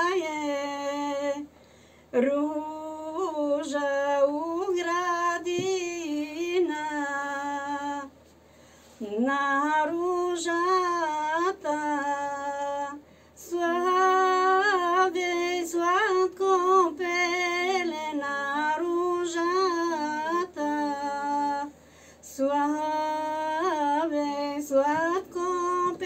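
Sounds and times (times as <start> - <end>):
woman singing folk song: 0.0 - 8.2, 8.9 - 26.0.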